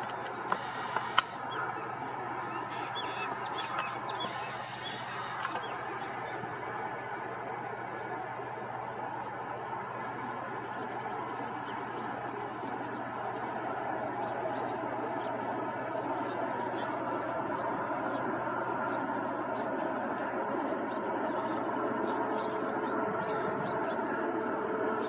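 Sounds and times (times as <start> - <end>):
sharp clicks: 0.0 - 1.4, 3.6 - 5.7
distant train rumble: 0.0 - 25.0
bursts of hiss: 0.5 - 1.4, 4.2 - 5.6
short bird-like chirps: 2.7 - 5.7.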